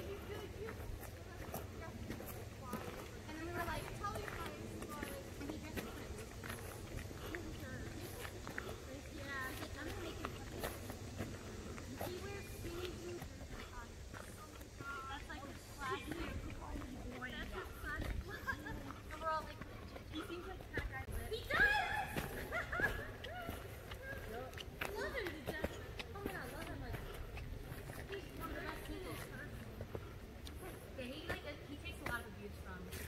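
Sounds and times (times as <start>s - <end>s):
faint distant voices: 0.0s - 33.0s
footsteps on dirt trail: 0.0s - 33.0s.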